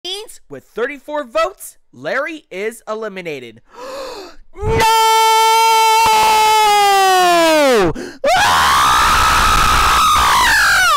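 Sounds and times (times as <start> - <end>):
cartoon voice screaming: 4.6 - 10.9.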